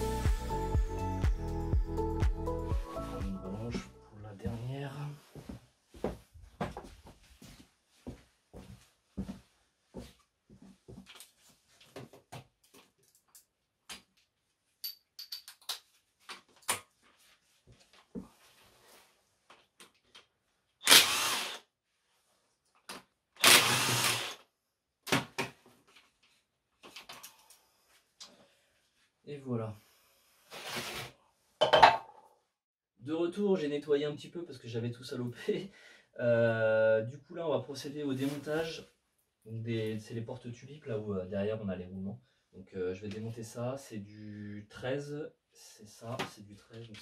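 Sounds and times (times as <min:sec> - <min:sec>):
cordless power tool running: 0:20.8 - 0:21.6, 0:23.4 - 0:24.4.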